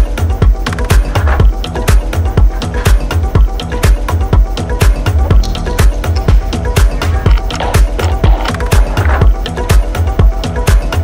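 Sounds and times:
bassline: 0:00.0 - 0:11.0
hi-hats: 0:00.0 - 0:11.0
four-on-the-floor kick drum: 0:03.2 - 0:09.4.

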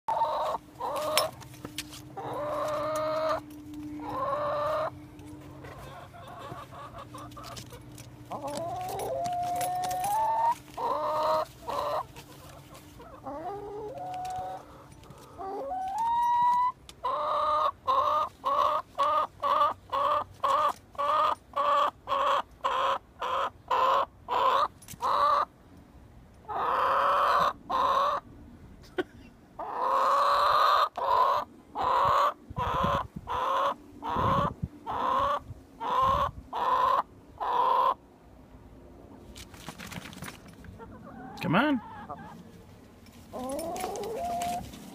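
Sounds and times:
hen drawn-out calls: 0:00.1 - 0:01.3, 0:02.2 - 0:03.4, 0:04.0 - 0:05.0, 0:08.3 - 0:25.5, 0:29.6 - 0:38.0, 0:40.8 - 0:42.4.

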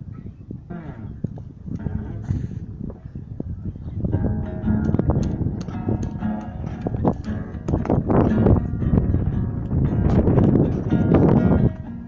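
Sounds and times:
acoustic guitar strummed and picked: 0:04.0 - 0:12.0
percussive clicks on guitar: 0:04.2 - 0:12.0.

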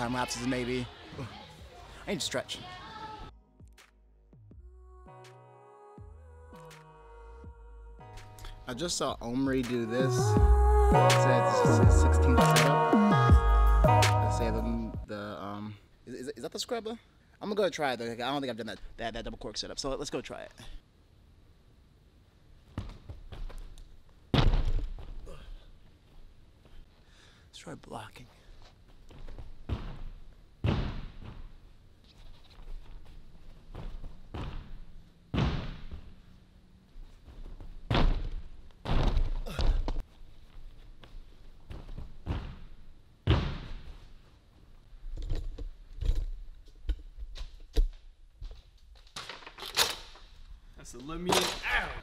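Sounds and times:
thuds landing on spring floor: 0:24.3 - 0:25.2, 0:29.2 - 0:31.5, 0:33.7 - 0:36.1, 0:37.5 - 0:40.0, 0:41.7 - 0:44.0.

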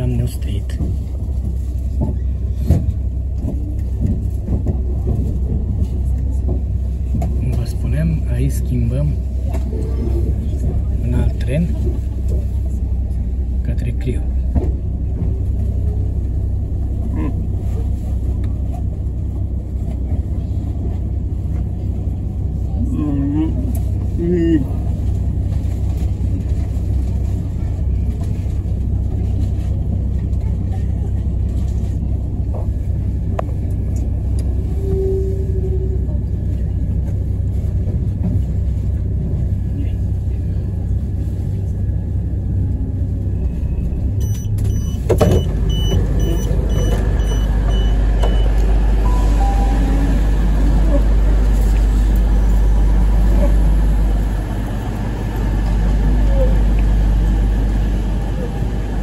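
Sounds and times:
train rumbling at platform: 0:00.0 - 0:59.0.

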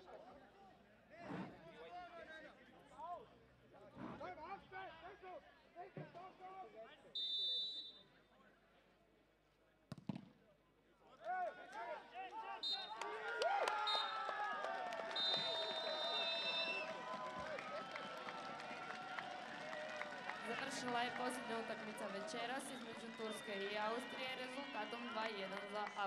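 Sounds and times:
referee's whistle blasts: 0:07.2 - 0:08.1, 0:12.6 - 0:13.0, 0:13.8 - 0:14.2, 0:15.1 - 0:16.9
players and spectators shouting: 0:11.2 - 0:26.0.

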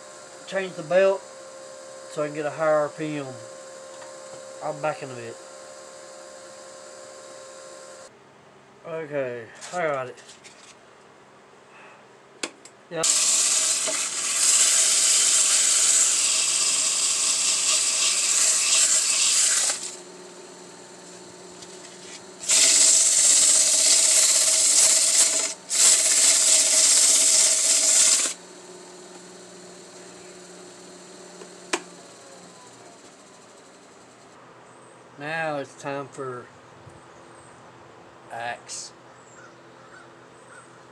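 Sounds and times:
sandpaper hissing on spinning wood: 0:00.0 - 0:03.8, 0:13.0 - 0:33.5
lathe motor running: 0:00.0 - 0:08.1, 0:13.0 - 0:34.3.

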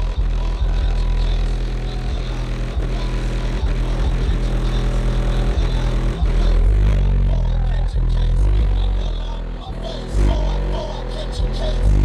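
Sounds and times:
deep bass music from car: 0:00.0 - 0:12.0.

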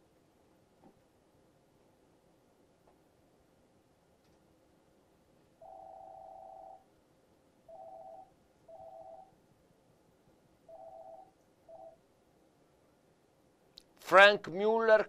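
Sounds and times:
electronic telephone beeps: 0:05.6 - 0:06.9, 0:07.7 - 0:09.4, 0:10.7 - 0:12.0.

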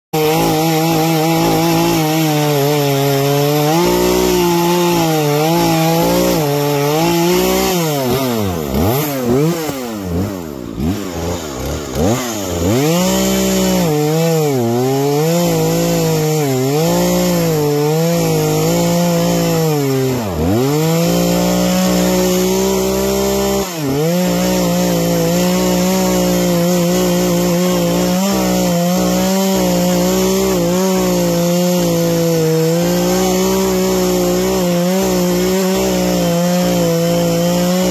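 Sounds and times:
chainsaw cutting wood: 0:00.1 - 0:37.9.

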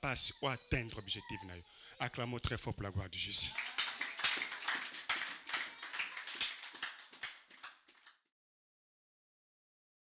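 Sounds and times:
congregation applauding: 0:03.5 - 0:08.3.

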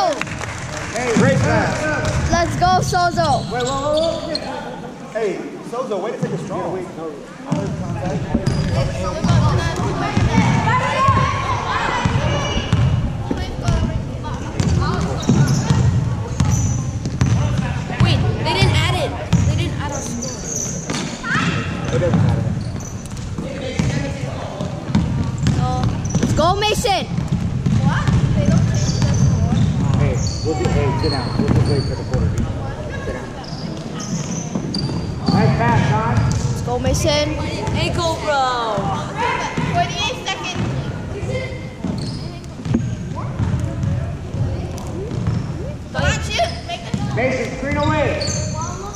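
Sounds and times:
sneaker squeaks: 0:02.3 - 0:04.8, 0:07.5 - 0:38.0, 0:39.3 - 0:48.9
basketball bouncing on hardwood: 0:14.6 - 0:18.2, 0:24.6 - 0:26.5, 0:27.1 - 0:32.5, 0:42.6 - 0:44.4.

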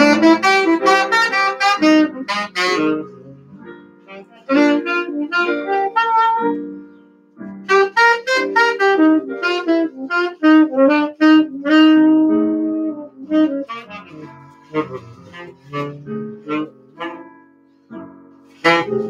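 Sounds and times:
jazz saxophone melody: 0:00.0 - 0:19.0
piano chords: 0:00.0 - 0:19.0.

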